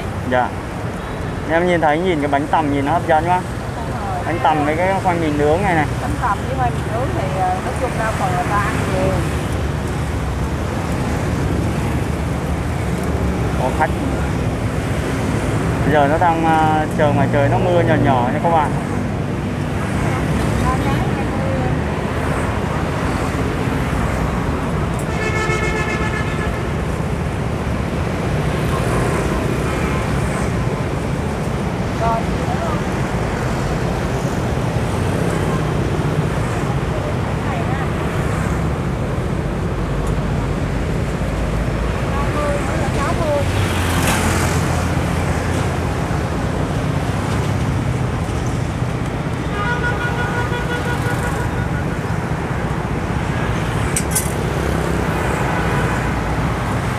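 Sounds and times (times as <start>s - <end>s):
motorbikes and cars passing: 0.0s - 56.9s
vehicle horn: 25.0s - 26.7s, 49.5s - 51.9s.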